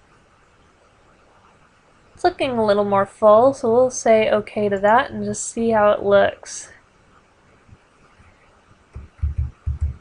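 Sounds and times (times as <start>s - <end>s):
faint microphone hiss: 0.0s - 10.0s.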